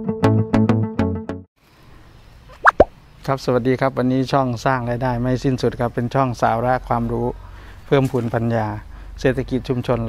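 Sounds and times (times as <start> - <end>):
faint hiss: 1.6 - 4.0
cartoon plop sound effects: 2.5 - 2.9.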